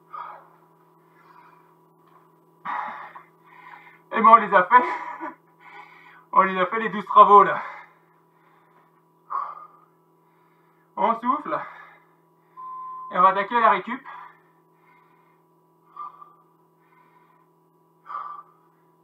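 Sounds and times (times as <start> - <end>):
man gasping for breath: 2.7 - 4.1, 14.1 - 19.0.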